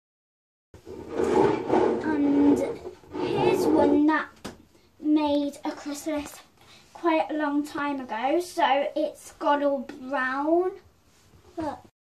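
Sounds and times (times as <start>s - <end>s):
girl speaking: 1.8s - 10.9s, 11.5s - 11.9s.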